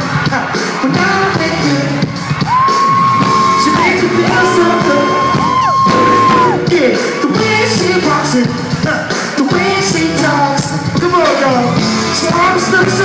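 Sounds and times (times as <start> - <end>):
band playing live: 0.0 - 13.0.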